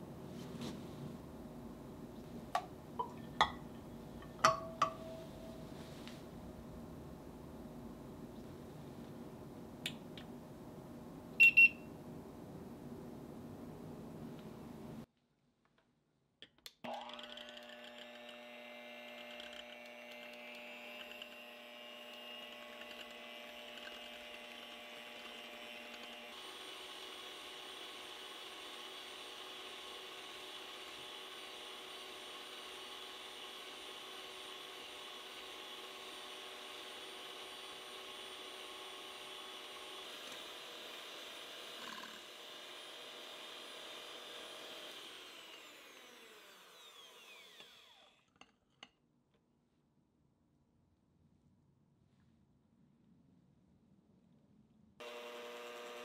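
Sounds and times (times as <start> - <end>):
electric hand mixer whirring: 16.9 - 48.3, 55.0 - 56.0.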